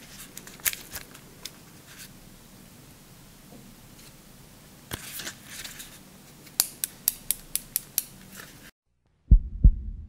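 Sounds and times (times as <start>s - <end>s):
low hum: 9.0s - 10.0s.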